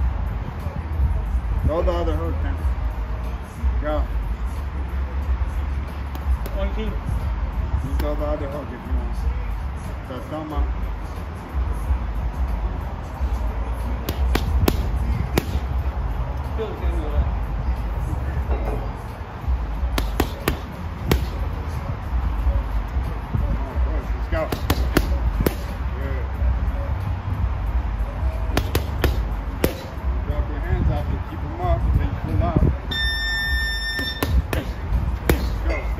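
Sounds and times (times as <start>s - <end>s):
steady low rumble: 0.0s - 9.9s, 10.5s - 35.9s
gloves punching heavy bag: 14.1s - 15.7s, 20.0s - 21.5s, 24.4s - 25.7s, 28.6s - 30.0s, 34.0s - 35.8s.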